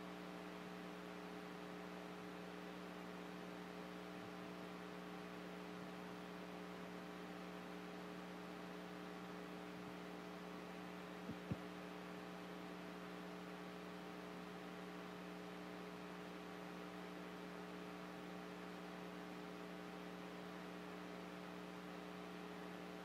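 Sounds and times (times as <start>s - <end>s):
electrical mains hum: 0.0s - 23.0s.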